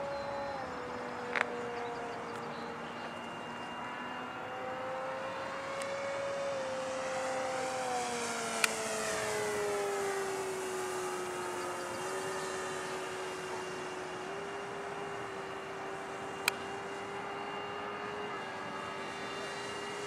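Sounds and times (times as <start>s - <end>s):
electric motor and propeller whining: 0.0s - 20.0s.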